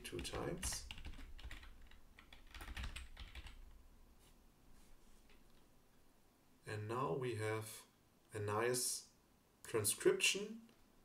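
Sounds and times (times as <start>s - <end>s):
computer keyboard typing: 0.0s - 3.8s.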